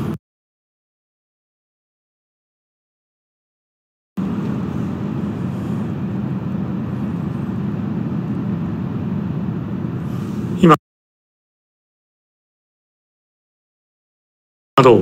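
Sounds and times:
muffled rumbling noise: 0:04.2 - 0:10.8.

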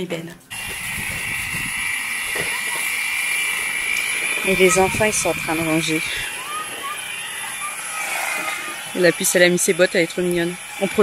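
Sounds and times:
electric hedge trimmer running: 0:00.5 - 0:11.0.

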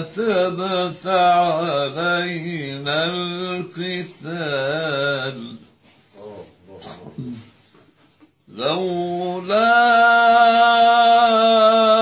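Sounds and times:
faint voice sounds: 0:06.2 - 0:07.6.

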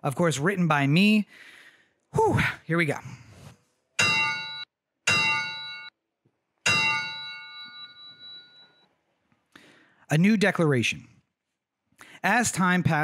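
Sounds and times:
bell struck: 0:04.0 - 0:05.9, 0:06.6 - 0:08.8.

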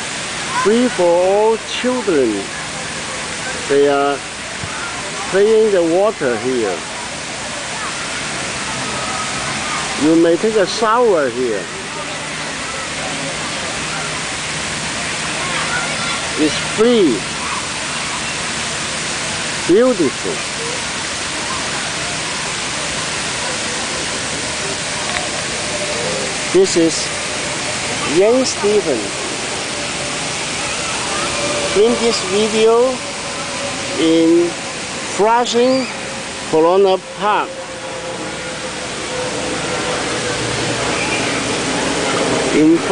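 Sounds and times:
fountain jets splashing into pool: 0:00.0 - 0:42.9
faint distant voices: 0:02.3 - 0:42.9.

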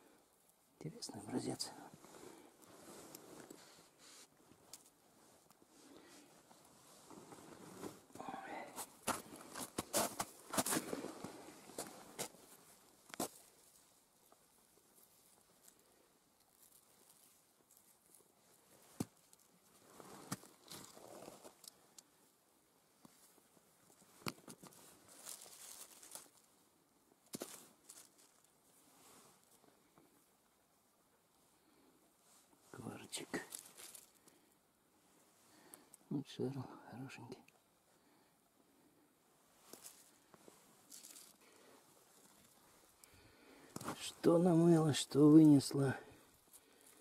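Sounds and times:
rustling soil and leaves: 0:00.0 - 0:47.0.

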